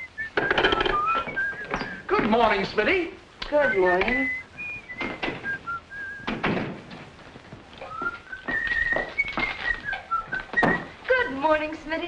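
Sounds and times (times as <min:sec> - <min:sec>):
person whistling a cheerful tune: 0:00.0 - 0:02.1, 0:03.5 - 0:06.3, 0:07.8 - 0:11.0
dull knocks: 0:06.2 - 0:07.1.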